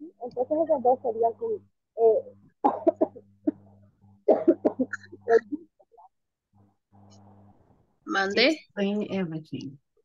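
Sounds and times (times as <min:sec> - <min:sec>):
steady low hum: 0:00.0 - 0:10.0
person coughing: 0:02.6 - 0:03.6, 0:04.3 - 0:05.4.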